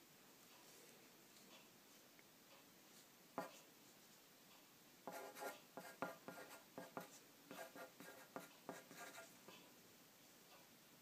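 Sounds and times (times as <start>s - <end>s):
pencil writing on paper: 5.1s - 9.3s.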